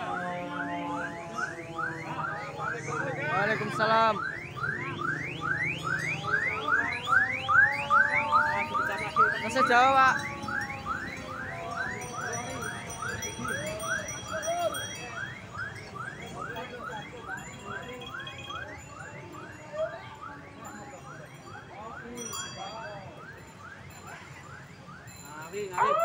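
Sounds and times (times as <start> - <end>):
electronic siren yelping: 0.0 - 14.5.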